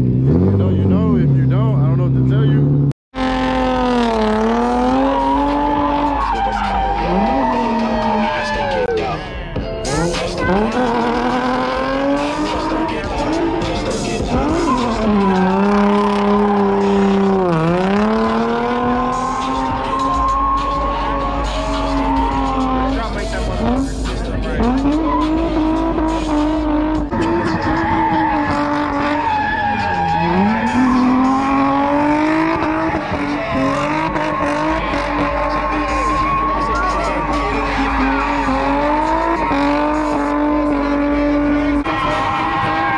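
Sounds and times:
car engine at high revs: 0.0 - 9.0, 9.8 - 42.9
tyre squeal: 10.2 - 23.8, 24.6 - 42.9.

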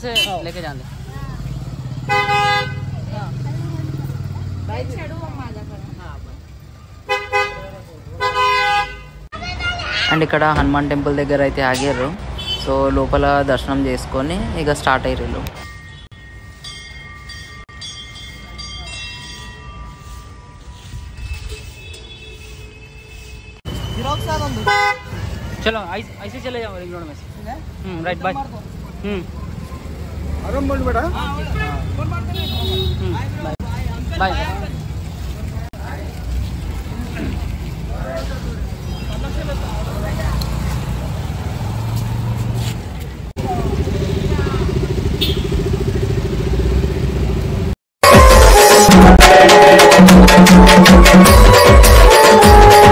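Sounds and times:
temple bells ringing: 15.6 - 22.5
vehicle engine low rumble: 33.6 - 47.8.

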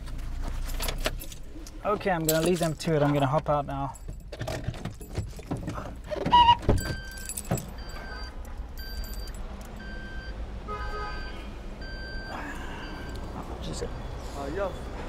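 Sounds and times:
car keys jangling: 0.5 - 9.9
car warning chime beeping: 6.3 - 13.3.

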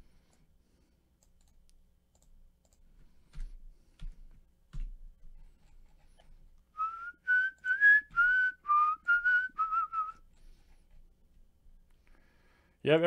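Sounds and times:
man whistling a tune: 6.8 - 10.2.

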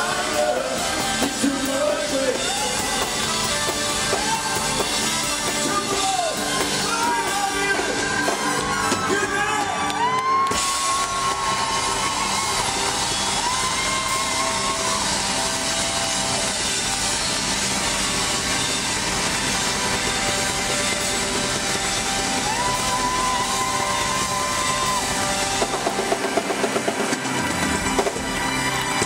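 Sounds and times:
live rock band with horns: 0.0 - 29.0.

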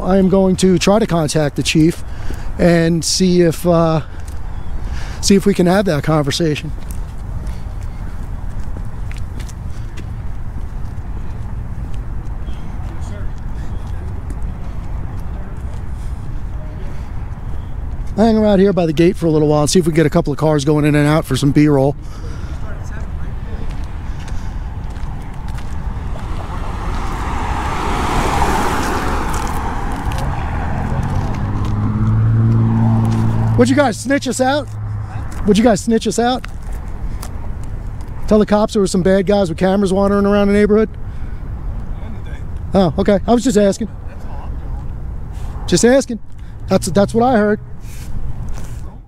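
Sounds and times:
car driving past: 24.0 - 35.5
deep engine hum: 25.8 - 35.3.

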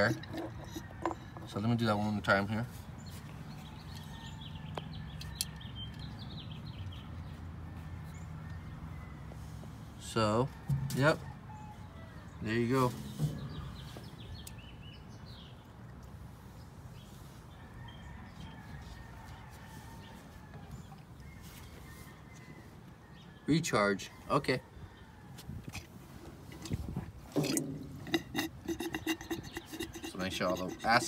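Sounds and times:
faint outdoor background noise: 0.0 - 31.0
rubber bulb gurgling and squishing: 26.5 - 31.0.

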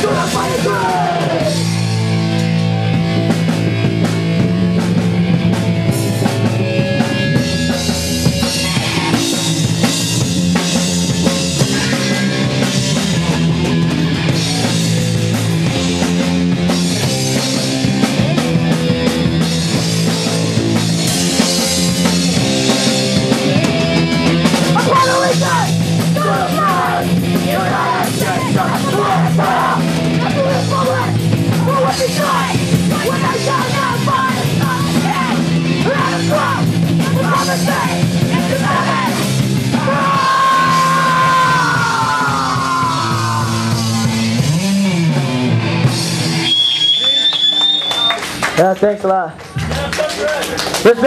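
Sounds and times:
shouted vocals: 0.0 - 1.8, 24.6 - 44.1
punk band playing live: 0.0 - 51.0.

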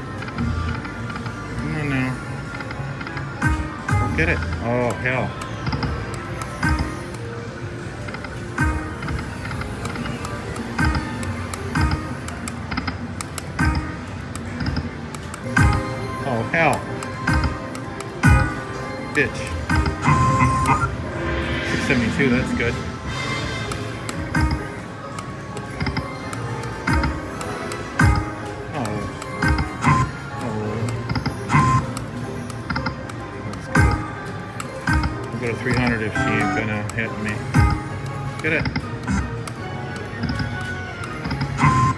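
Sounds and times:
slot machine game music: 0.0 - 41.9
slot machine electronic chimes: 15.5 - 25.5, 26.2 - 32.5, 35.1 - 37.9, 41.5 - 41.9.

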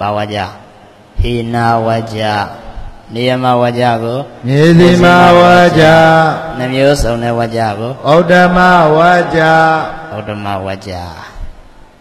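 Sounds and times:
man chanting: 1.2 - 11.4.

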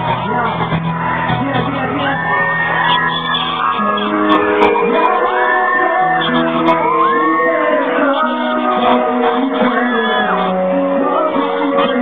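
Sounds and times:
live music with held notes: 0.0 - 12.0
voices shouting and whooping: 0.0 - 12.0.

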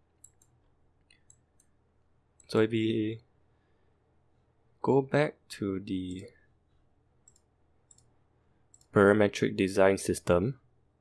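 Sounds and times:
computer mouse clicks: 0.2 - 1.8, 7.2 - 8.1, 8.7 - 9.0.

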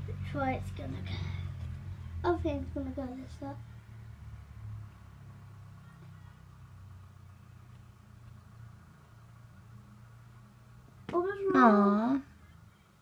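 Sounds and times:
faint low engine hum: 0.0 - 13.0.

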